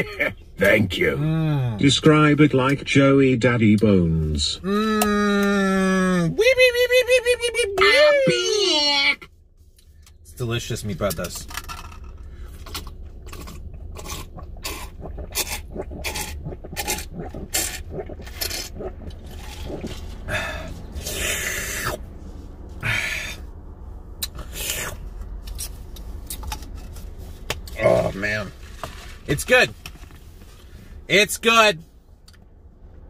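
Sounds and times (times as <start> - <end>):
low hum: 9.4 - 31.1
mouth chewing food: 13.2 - 21.2.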